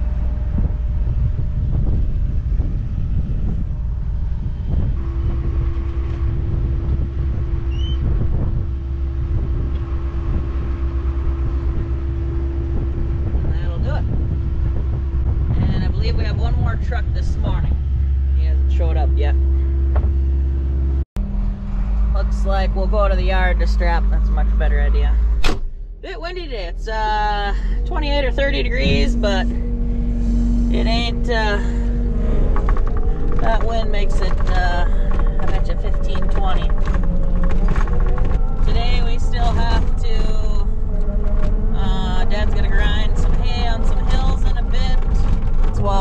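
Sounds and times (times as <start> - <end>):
steady whine: 0.0 - 46.0
tractor engine rumbling: 0.0 - 46.0.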